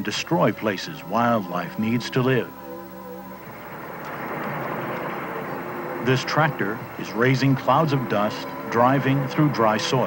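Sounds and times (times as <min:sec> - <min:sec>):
tractor engine running: 0:00.0 - 0:10.0.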